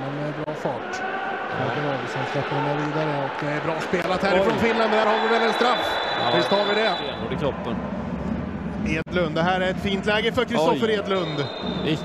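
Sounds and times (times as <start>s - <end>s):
indoor arena rumble: 0.0s - 12.0s.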